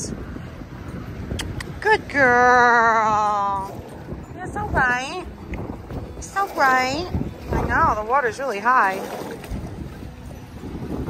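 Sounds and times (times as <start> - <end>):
motorboat passing: 0.0 - 11.0
water lapping against dock: 0.0 - 11.0
wind buffeting microphone: 0.0 - 11.0.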